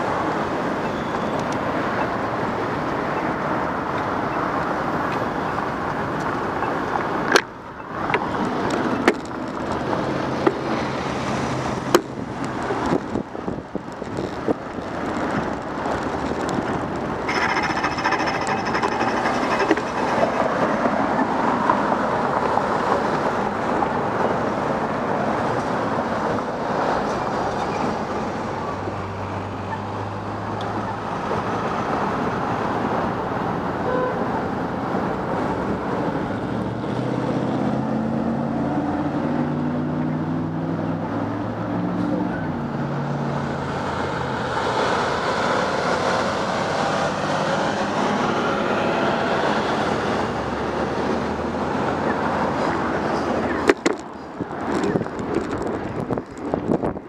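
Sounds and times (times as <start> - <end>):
wind rush on camera: 0.0 - 17.3, 42.4 - 57.0
cars passing: 0.0 - 57.0
brief high squeal: 17.3 - 21.3.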